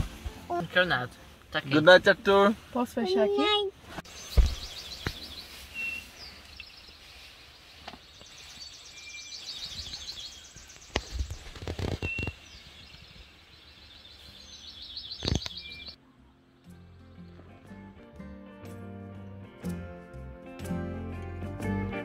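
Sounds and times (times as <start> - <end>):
birds singing: 4.0 - 17.6
low thumps: 4.3 - 5.3.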